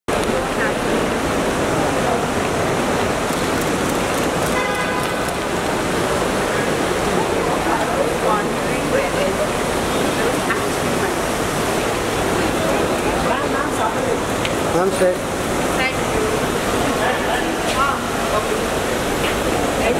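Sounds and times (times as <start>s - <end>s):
crowd hubbub: 0.1s - 19.9s
traffic rush: 0.1s - 19.9s
short horn tone: 4.6s - 5.3s.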